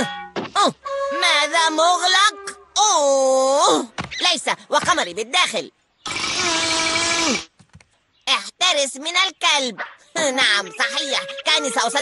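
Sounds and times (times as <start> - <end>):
cartoon drill-like whine: 6.0 - 7.5.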